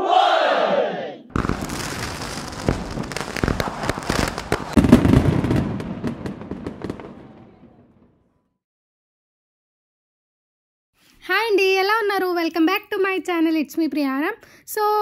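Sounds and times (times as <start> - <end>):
firecrackers crackling and popping: 1.3 - 8.2.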